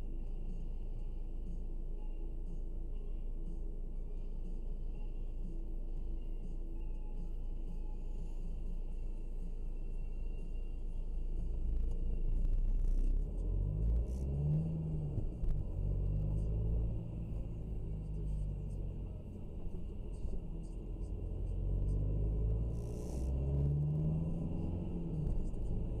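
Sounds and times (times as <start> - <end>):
road rumble: 0.0 - 26.0
car engine accelerating: 11.4 - 26.0.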